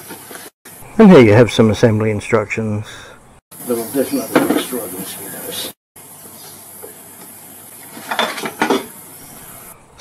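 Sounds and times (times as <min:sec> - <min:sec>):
steady high hiss: 0:03.6 - 0:05.8.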